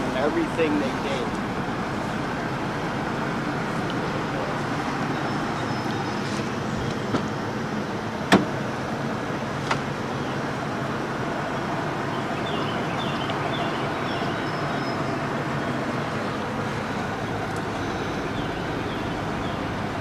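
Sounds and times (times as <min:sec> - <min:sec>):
car door latch click: 0:08.3 - 0:08.6, 0:09.6 - 0:09.9.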